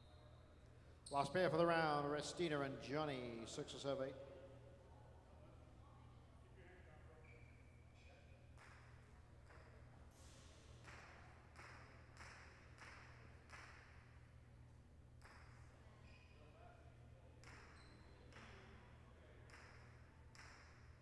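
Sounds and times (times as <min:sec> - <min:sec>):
knocks echoing in a large hall: 0:06.6 - 0:21.0.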